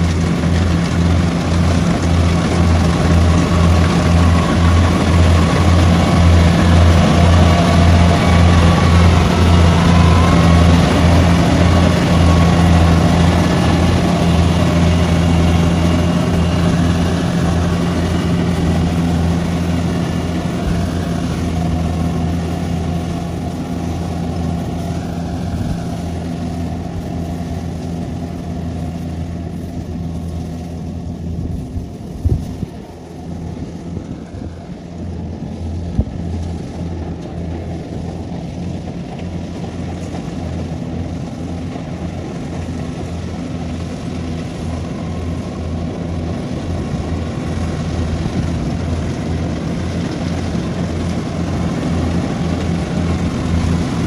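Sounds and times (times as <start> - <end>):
combine harvester engine drone: 0.0 - 54.0.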